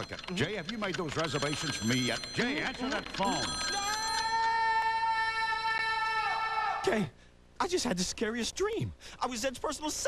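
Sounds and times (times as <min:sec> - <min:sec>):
man screaming: 0:04.3 - 0:07.0.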